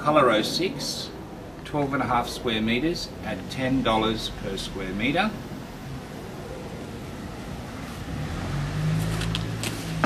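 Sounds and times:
faint background noise: 0.0 - 10.0
low engine-like hum: 0.2 - 10.0.

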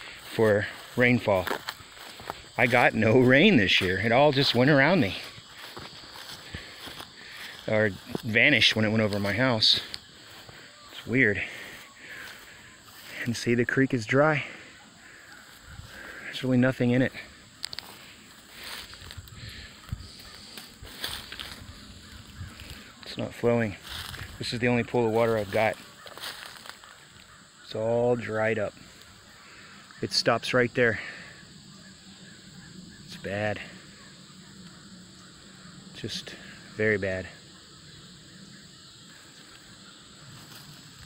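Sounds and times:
footsteps through grass and brush: 0.0 - 27.5, 39.0 - 41.0
leaves rustling: 0.0 - 30.0, 39.0 - 41.0
high-pitched insect chorus: 0.0 - 41.0.

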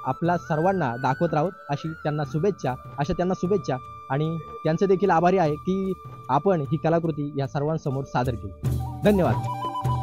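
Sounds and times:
person speaking: 0.0 - 9.5
music with stepwise melody: 0.0 - 10.0.

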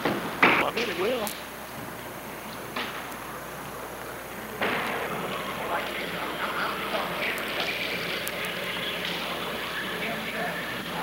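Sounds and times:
large hall background noise: 0.0 - 11.0
distant indistinct voices: 0.5 - 11.0.

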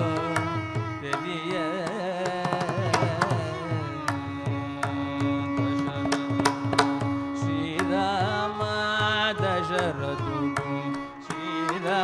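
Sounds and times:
person singing melody: 0.0 - 12.0.

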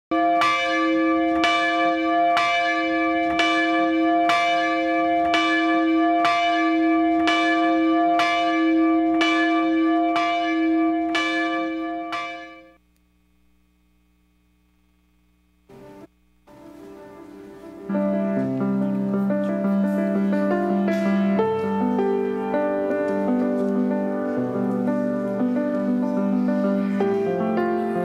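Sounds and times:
bell tolling: 0.1 - 12.8.

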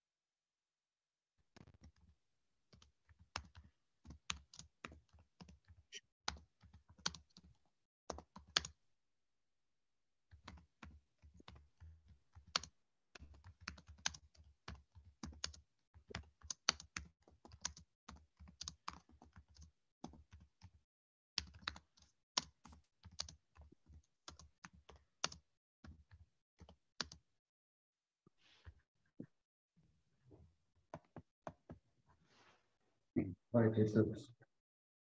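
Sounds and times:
computer keyboard typing: 1.6 - 2.1, 2.8 - 8.8, 10.4 - 11.6, 12.3 - 20.8, 21.4 - 27.2.

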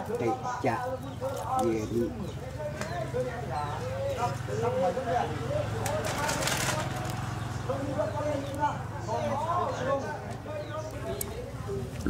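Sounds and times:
voices talking: 0.0 - 12.0
rustling or scraping noise: 5.9 - 7.2.

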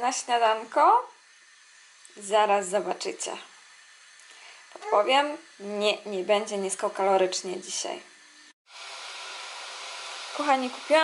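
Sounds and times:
batter sizzling in a pan: 0.0 - 11.0.

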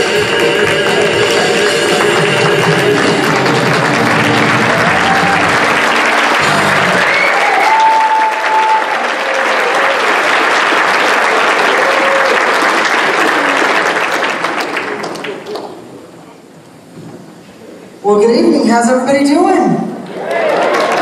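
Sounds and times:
music: 0.0 - 7.0
audience applauding: 0.0 - 16.0, 20.2 - 21.0.

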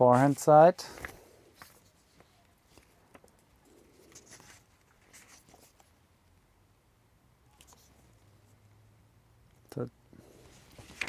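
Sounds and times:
faint rustles and clicks of handling: 0.0 - 6.4, 7.5 - 8.7, 9.4 - 11.0.

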